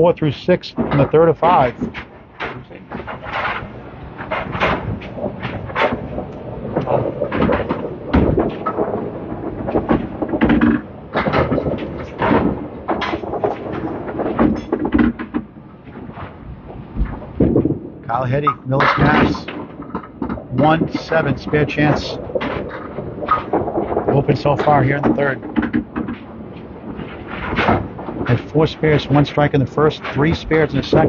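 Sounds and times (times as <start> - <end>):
bowling balls and pins clattering: 0.0 - 31.0.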